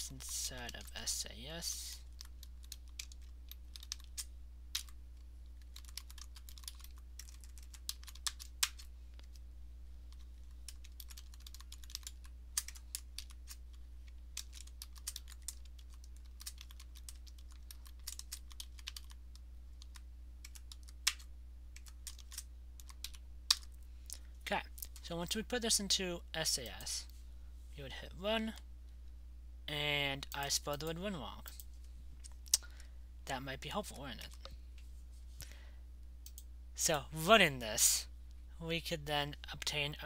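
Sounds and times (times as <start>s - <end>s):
typing on computer keyboard: 2.1s - 5.0s, 5.6s - 9.4s, 10.7s - 13.6s, 14.3s - 23.7s.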